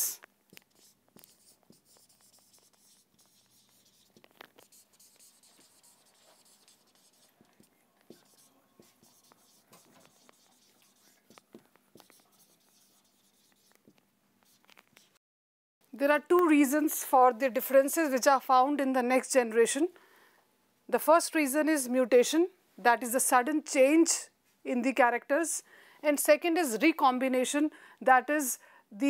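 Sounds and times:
marker writing on whiteboard: 0.0s - 15.2s.

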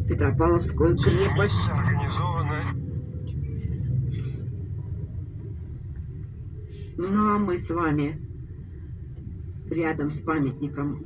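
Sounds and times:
bus engine and tyres rumbling: 0.0s - 11.0s.

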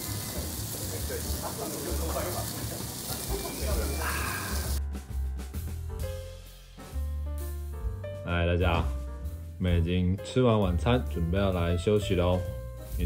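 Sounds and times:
diners chattering: 0.0s - 4.8s
meat sizzling on grill: 0.0s - 4.8s
background music: 3.0s - 13.0s.

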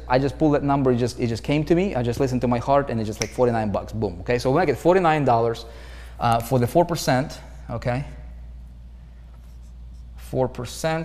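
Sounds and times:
steady low hum: 0.0s - 11.0s
marker writing on whiteboard: 9.3s - 10.3s.

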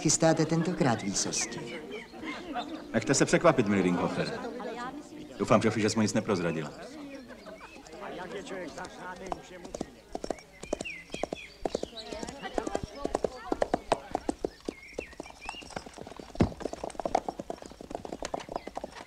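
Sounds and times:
horse hooves clip-clopping: 0.0s - 19.0s.

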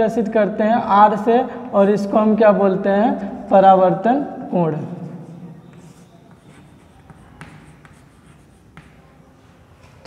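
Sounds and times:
chalk scratching on blackboard: 5.2s - 9.2s
chalk tapping on board: 5.6s - 9.2s.

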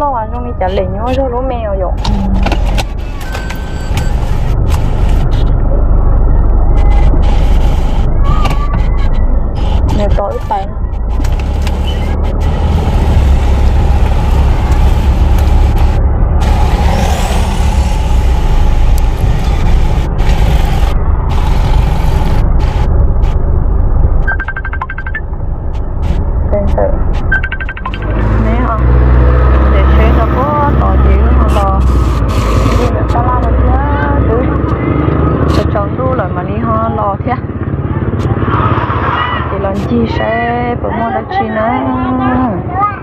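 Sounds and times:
car road noise rumble: 0.0s - 43.0s.

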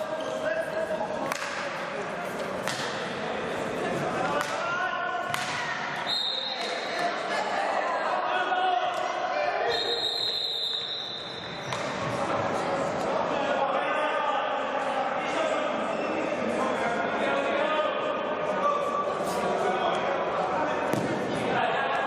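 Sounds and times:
players' voices echoing: 0.0s - 22.0s
hockey sticks clacking ball: 1.2s - 1.8s, 2.4s - 3.1s
referee's whistle blowing: 6.0s - 6.7s, 9.7s - 11.7s.

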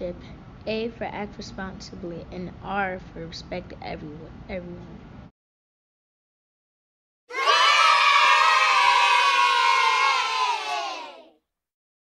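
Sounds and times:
children cheering and shouting: 7.3s - 11.4s.

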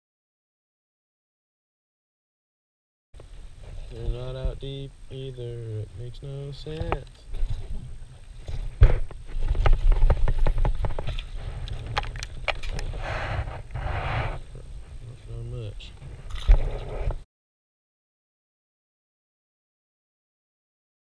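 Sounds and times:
fish handled on plastic deck: 6.7s - 13.8s.

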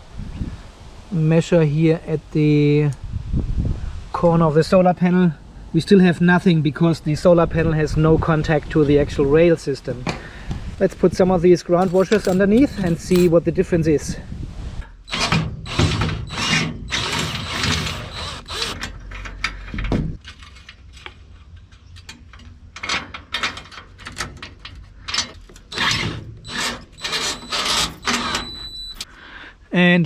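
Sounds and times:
metallic clicks and clinks: 11.8s - 13.3s
cordless drill rapid clicks: 15.1s - 18.8s.

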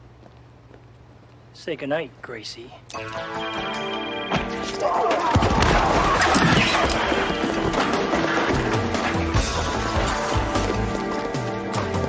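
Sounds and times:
background music: 2.9s - 12.0s.

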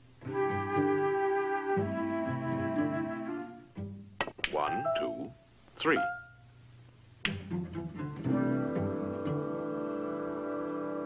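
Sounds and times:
orchestral music: 7.5s - 11.0s.

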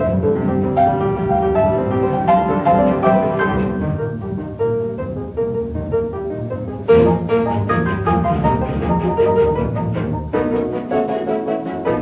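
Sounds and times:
orchestral piano concerto: 0.0s - 12.0s.

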